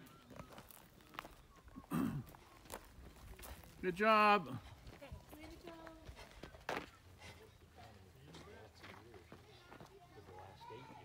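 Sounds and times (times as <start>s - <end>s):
running footsteps on dirt: 0.0s - 11.0s.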